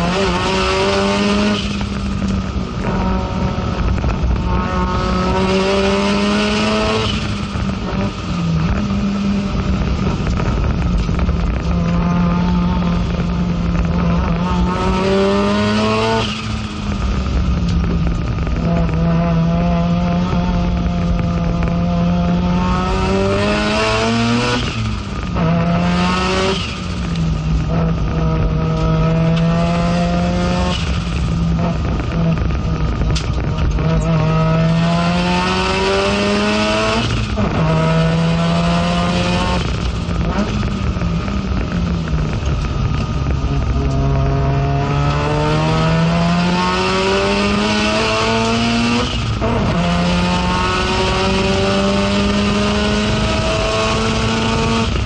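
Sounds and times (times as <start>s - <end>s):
race car engine accelerating: 0.0s - 55.0s.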